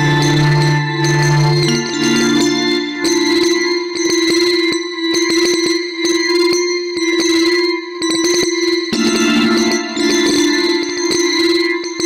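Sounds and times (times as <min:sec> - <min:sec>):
steady held tone: 0:00.0 - 0:04.0
bell-like struck tones: 0:00.0 - 0:04.8, 0:09.0 - 0:12.0.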